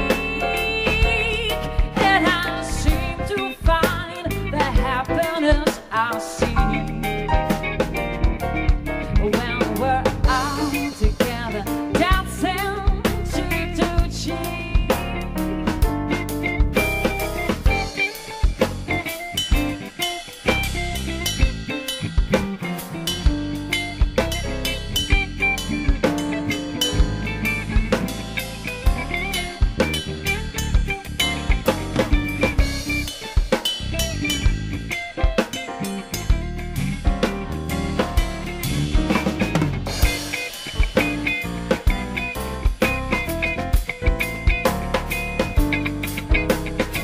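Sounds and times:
jazz band playing: 0.0s - 47.0s
snare and kick drum strikes: 37.0s - 47.0s.

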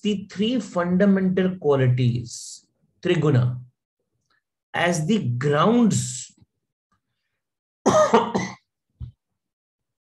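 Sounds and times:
man clearing his throat: 7.9s - 8.7s.

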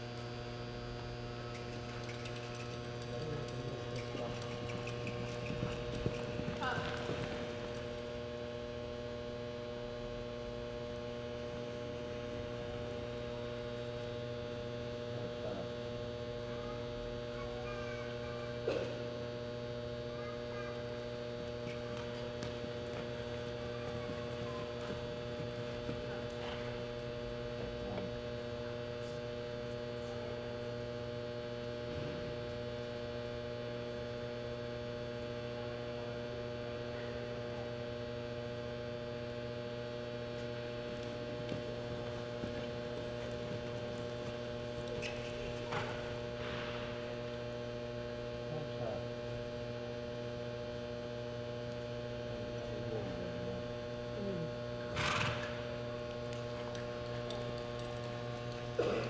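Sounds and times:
electrical mains hum: 0.0s - 59.0s.

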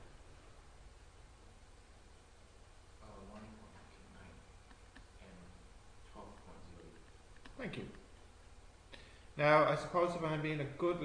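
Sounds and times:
faint low muttering: 0.0s - 11.0s.

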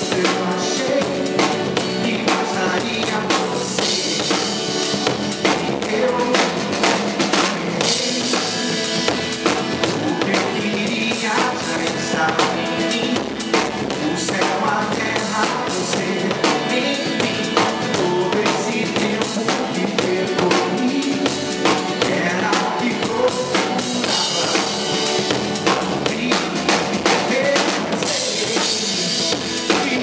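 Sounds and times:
live band music: 0.0s - 30.0s.

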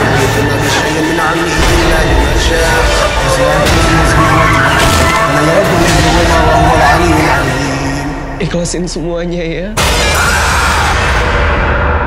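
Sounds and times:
dramatic horror music: 0.0s - 12.0s
car tyres skidding: 3.0s - 7.4s.

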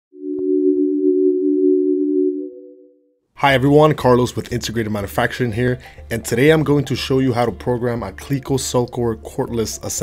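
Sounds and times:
steady low electronic tone: 0.2s - 3.1s.

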